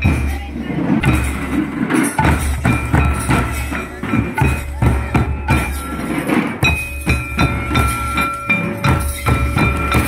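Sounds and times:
ringing metallic tone: 0:01.9 - 0:10.0.

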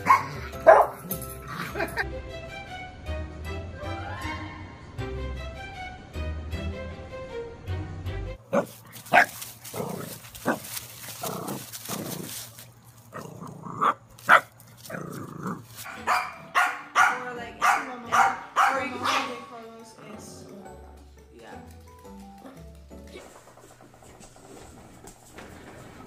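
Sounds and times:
dogs barking: 0:00.0 - 0:02.0, 0:08.4 - 0:12.4, 0:13.1 - 0:19.6
dog yapping: 0:08.5 - 0:12.4, 0:13.8 - 0:15.0, 0:15.8 - 0:19.4.

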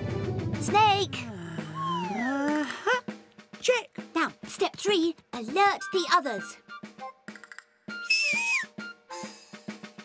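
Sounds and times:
background music with drum beat: 0:00.0 - 0:10.0
shrill finger whistle: 0:01.8 - 0:02.3, 0:07.9 - 0:09.0.

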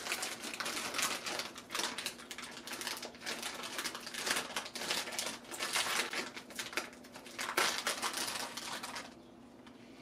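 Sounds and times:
plastic packet crackling: 0:00.0 - 0:09.2.

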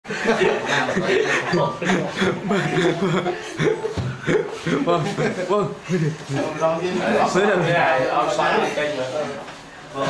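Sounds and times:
chuckling laughter: 0:00.1 - 0:06.2.

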